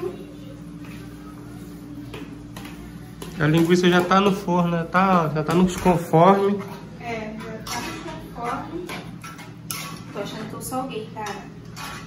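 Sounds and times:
utensil stirring pasta in saucepan: 0:00.0 - 0:12.0.

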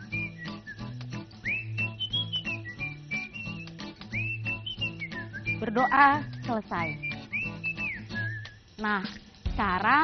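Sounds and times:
whistled melody: 0:00.0 - 0:08.8.

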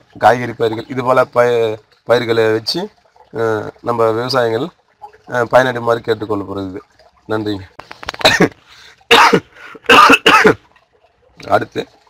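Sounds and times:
man coughing: 0:08.2 - 0:10.6.

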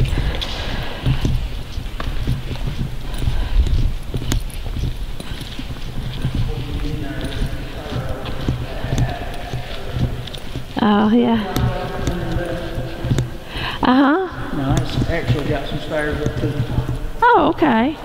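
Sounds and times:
footsteps on concrete: 0:00.0 - 0:18.0
faint voices: 0:06.2 - 0:18.0.

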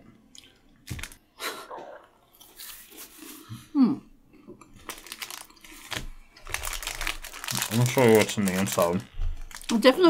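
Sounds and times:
chewing crunchy wafer bar: 0:04.8 - 0:09.8.

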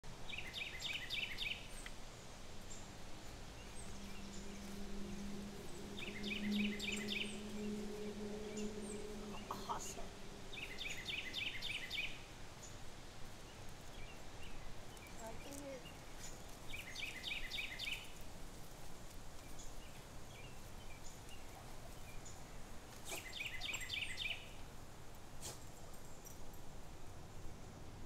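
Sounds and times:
steady low hum: 0:01.6 - 0:16.7
bird calling high notes: 0:03.5 - 0:12.3.

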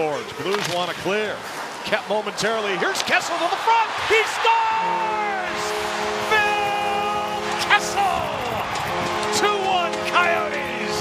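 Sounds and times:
crowd cheering: 0:01.9 - 0:11.0
high gliding shouts: 0:04.1 - 0:11.0
goal horn blaring: 0:04.3 - 0:11.0.

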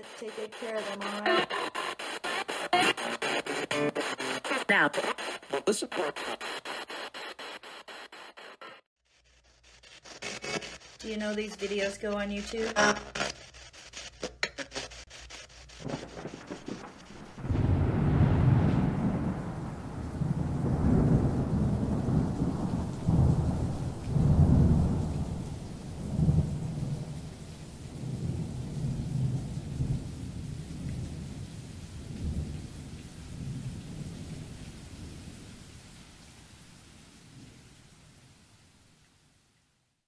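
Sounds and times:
rain hiss: 0:00.0 - 0:08.8, 0:15.5 - 0:39.8
thunder rumbling: 0:15.8 - 0:35.8.

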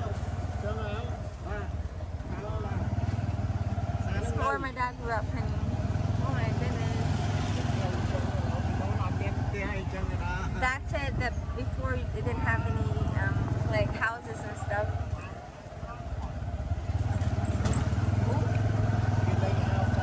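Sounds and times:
people talking: 0:00.0 - 0:03.0, 0:04.1 - 0:14.9, 0:18.2 - 0:18.6, 0:19.2 - 0:20.0
small engine droning: 0:00.0 - 0:20.0.

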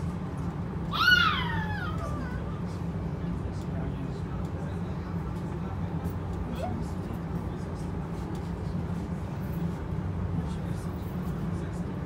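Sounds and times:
train carriage rumble: 0:00.0 - 0:12.0
high-pitched rising and falling cry: 0:00.9 - 0:02.2.

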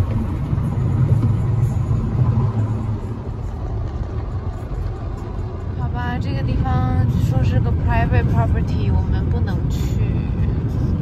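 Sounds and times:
car tyres and engine rumble: 0:00.0 - 0:11.0.

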